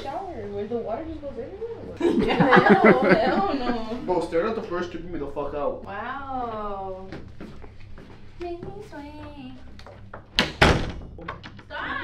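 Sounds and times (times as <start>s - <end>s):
wooden door slamming: 10.4s - 11.2s.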